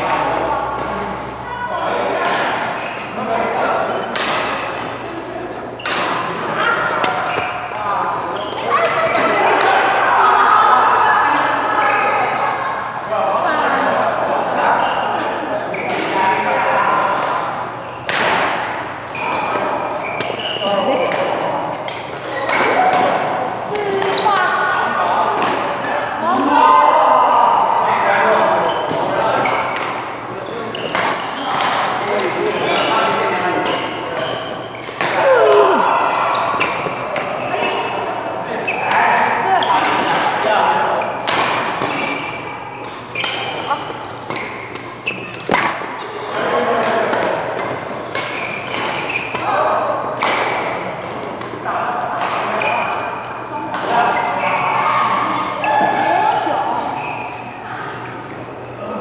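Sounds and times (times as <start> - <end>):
rackets hitting shuttlecock: 4.1 - 5.0
indistinct voices: 35.0 - 36.6.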